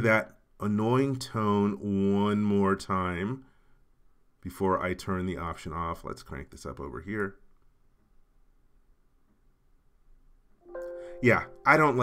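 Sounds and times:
collision-warning chime: 10.7s - 12.0s.

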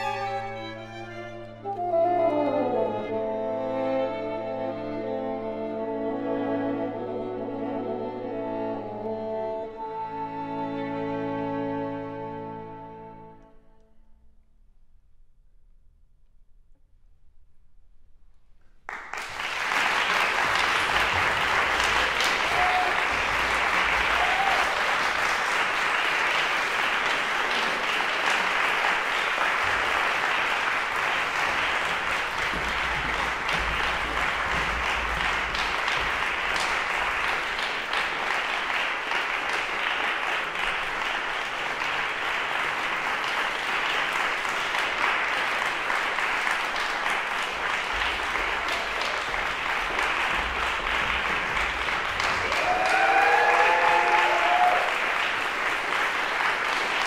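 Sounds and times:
audience applauding: 18.9s - 57.0s.

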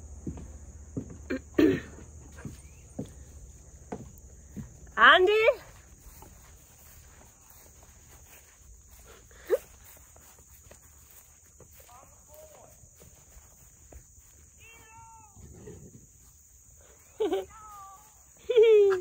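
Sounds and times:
footsteps through grass: 2.2s - 19.0s.

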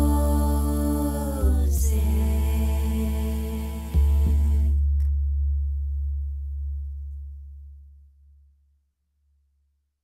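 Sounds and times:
low electronic bass tone: 0.0s - 8.6s.

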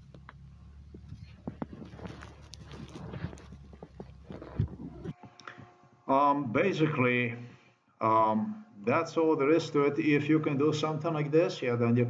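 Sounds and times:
small knocks and clatter: 0.0s - 5.4s.

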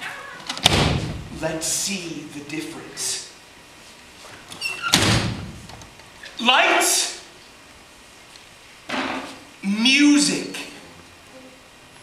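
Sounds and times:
loud wooden slam: 0.6s - 1.4s, 4.9s - 5.7s
short high squeaks: 4.5s - 5.0s.

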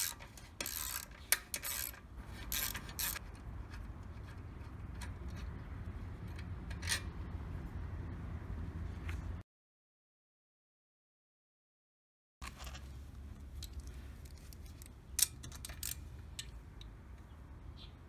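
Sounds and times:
small parts clicking and tapping: 0.0s - 7.1s, 12.4s - 17.3s.

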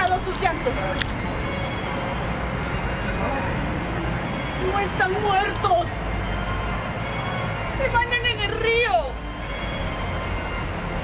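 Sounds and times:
faint indistinct voices: 0.0s - 10.8s.

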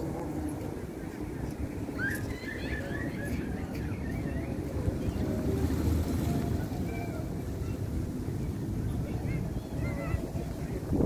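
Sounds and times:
distant road traffic: 0.0s - 11.0s
wind on microphone: 0.0s - 11.0s
high squeaky calls: 2.0s - 5.3s.

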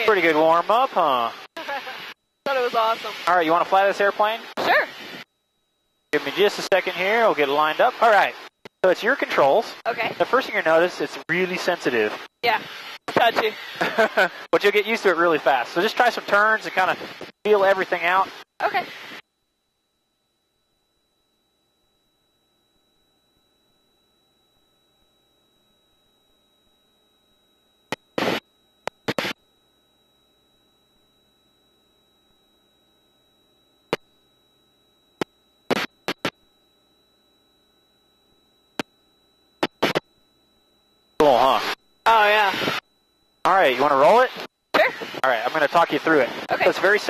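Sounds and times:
faint high whine: 0.0s - 47.0s
short noise bursts: 28.2s - 28.4s, 29.0s - 29.4s, 35.7s - 36.3s, 39.6s - 40.0s, 41.2s - 42.8s
person speaking: 46.2s - 47.0s.

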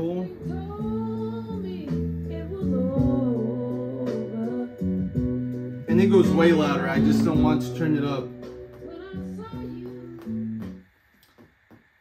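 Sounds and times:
music through pa speaker: 0.0s - 12.0s.

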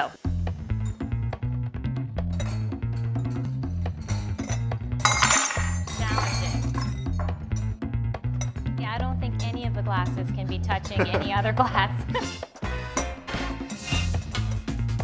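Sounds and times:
background music with bass line: 0.0s - 15.0s
glasses and knives clinking: 2.2s - 7.8s, 8.4s - 8.6s.

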